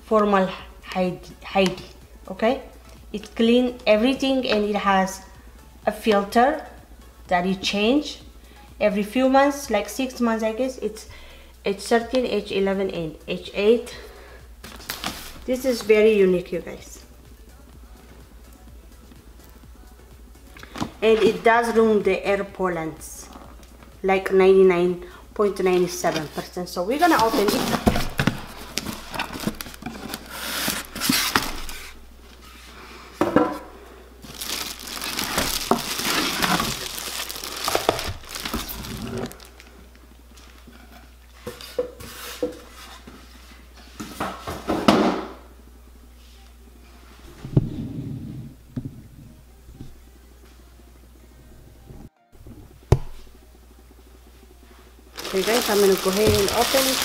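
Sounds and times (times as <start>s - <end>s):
cardboard box and plastic rustling: 26.0s - 32.0s, 34.2s - 39.7s, 55.2s - 57.0s.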